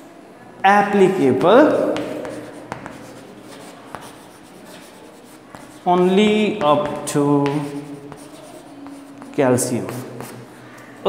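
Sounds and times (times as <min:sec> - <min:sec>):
chalk tapping on board: 0:01.4 - 0:10.5
chalk scratching on blackboard: 0:01.7 - 0:10.6.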